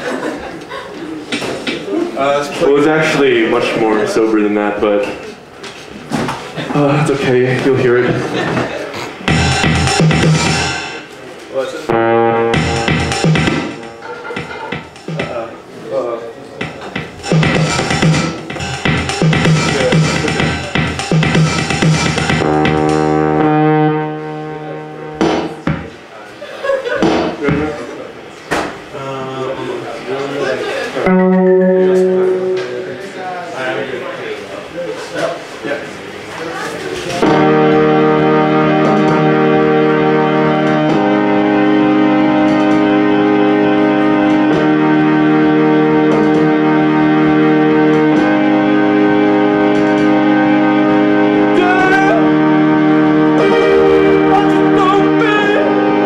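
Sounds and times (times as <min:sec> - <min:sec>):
electronic keyboard chords: 0:09.1 - 0:11.1, 0:11.9 - 0:15.5, 0:16.6 - 0:26.0, 0:31.0 - 0:33.8, 0:37.2 - 0:56.0.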